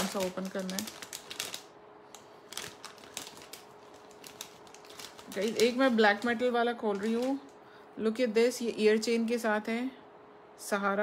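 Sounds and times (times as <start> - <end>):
jewelry packets clicking and rustling: 0.0 - 7.6
faint hum: 0.0 - 11.0.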